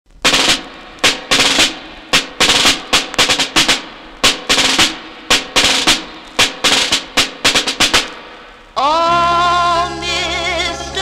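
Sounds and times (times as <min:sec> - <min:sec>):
snare drum rolls: 0:00.1 - 0:08.6.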